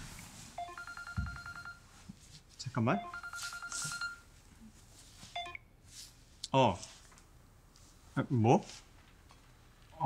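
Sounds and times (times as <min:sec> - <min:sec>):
mobile phone ringtone beeping: 0:00.6 - 0:02.0, 0:03.0 - 0:04.3.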